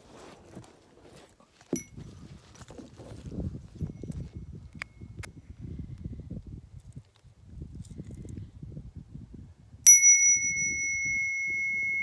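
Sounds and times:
light metallic clinks: 0:01.8 - 0:02.0, 0:09.9 - 0:12.0
small hand bell ringing: 0:01.8 - 0:02.0, 0:09.9 - 0:12.0.

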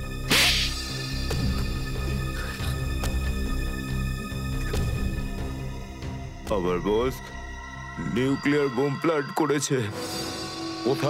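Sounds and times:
background music: 0:00.0 - 0:11.0
hard slap across the face: 0:00.3 - 0:01.4.

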